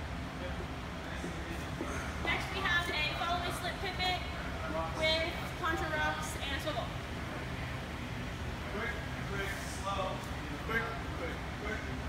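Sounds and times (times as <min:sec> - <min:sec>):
steady low hum: 0:00.0 - 0:12.0
woman speaking: 0:02.2 - 0:04.3, 0:05.0 - 0:07.0.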